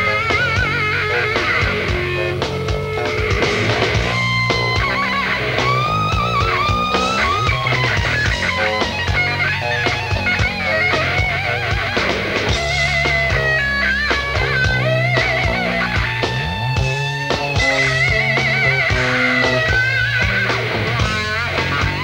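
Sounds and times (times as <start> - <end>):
bass guitar: 0.0 - 22.0
chugging rhythm guitar: 0.0 - 22.0
distorted electric guitar lead: 0.0 - 22.0.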